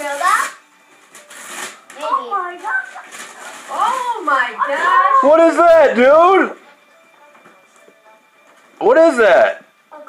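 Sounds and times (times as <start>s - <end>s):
wrapping paper tearing and crinkling: 0.0s - 5.3s.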